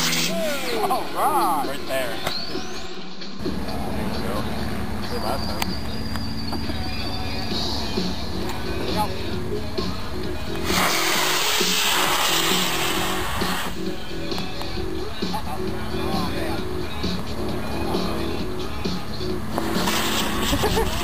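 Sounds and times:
rocket motor rushing hiss: 0.0s - 0.8s, 10.6s - 13.9s, 19.4s - 21.0s
background music with synth bass: 0.0s - 21.0s.

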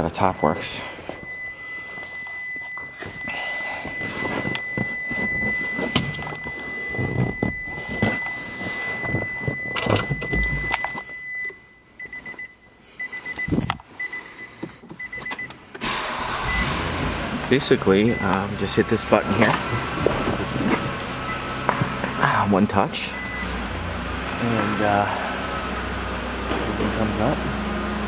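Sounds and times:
car warning chime beeping: 0.0s - 16.9s, 17.5s - 23.8s.

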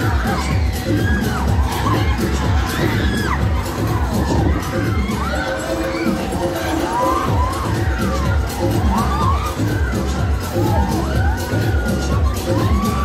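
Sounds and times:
loud music with thumping beat: 0.0s - 13.0s
riders screaming and shouting: 0.0s - 13.0s.

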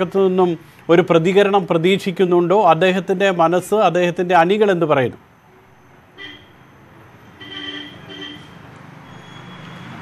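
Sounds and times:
faint street traffic: 0.0s - 10.0s
vehicle horn tooting: 6.2s - 6.6s, 7.4s - 8.6s.

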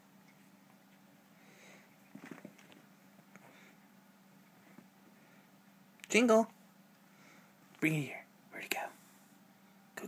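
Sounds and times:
low steady hum: 0.0s - 10.0s
cat scuffling on carpet: 2.0s - 3.6s.

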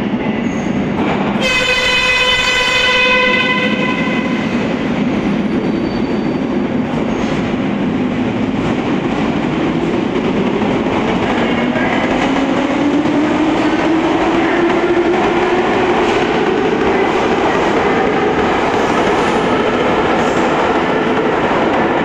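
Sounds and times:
train wheels rumbling on rails: 0.0s - 22.0s.

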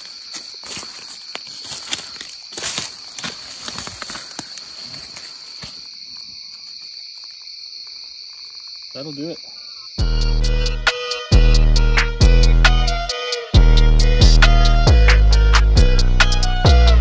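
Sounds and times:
footsteps in dry leaves: 0.0s - 8.9s
night insects chorus: 0.0s - 14.2s.

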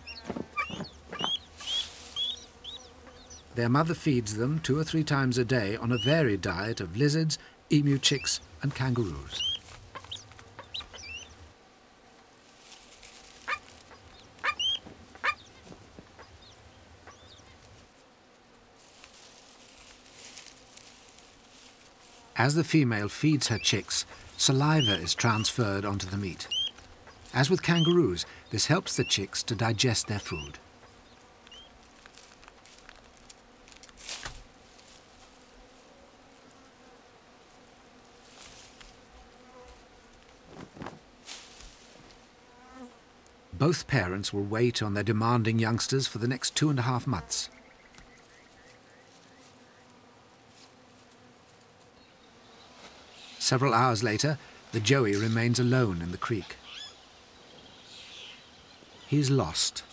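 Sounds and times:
high-pitched bird chirps: 0.0s - 2.5s, 14.4s - 15.4s
flies buzzing: 0.0s - 59.9s
brief rustling: 40.2s - 42.2s.

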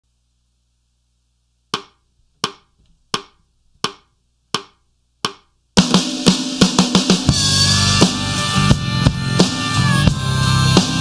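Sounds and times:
count-in clicks: 1.8s - 5.5s
drum kit with backing music: 5.3s - 11.0s.

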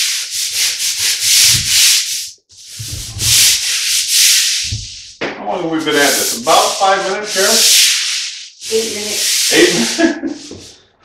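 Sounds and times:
scrub brush scrubbing tile floor: 0.0s - 10.6s.

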